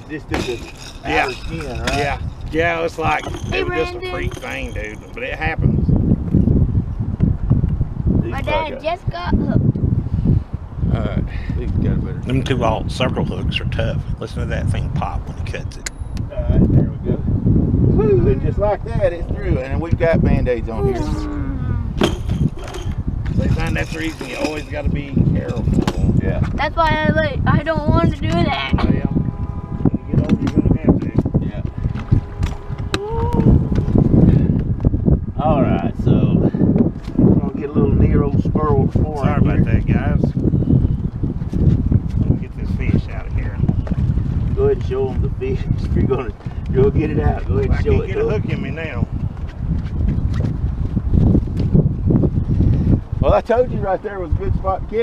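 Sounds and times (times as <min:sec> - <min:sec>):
indistinct talking: 0:00.0 - 0:05.3, 0:08.3 - 0:09.6
steady low rumble: 0:00.0 - 0:55.0
wind buffeting microphone: 0:00.0 - 0:55.0.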